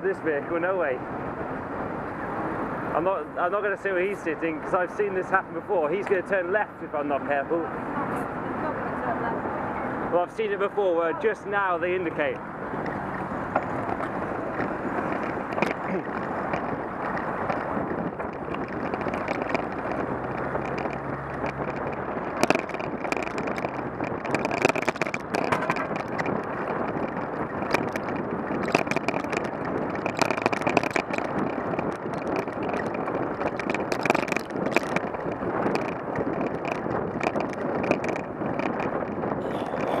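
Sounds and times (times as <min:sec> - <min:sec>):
road noise: 0:00.0 - 0:40.0
wind buffeting microphone: 0:00.0 - 0:40.0
sharp rattles and knocks: 0:12.2 - 0:40.0.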